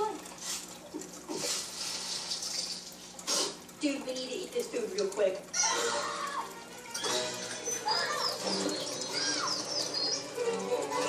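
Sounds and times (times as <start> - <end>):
aquarium air bubbles: 0.0 - 11.0.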